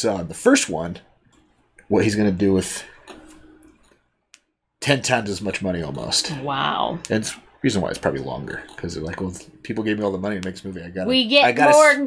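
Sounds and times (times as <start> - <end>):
man speaking: 1.9 - 3.0, 4.8 - 12.0.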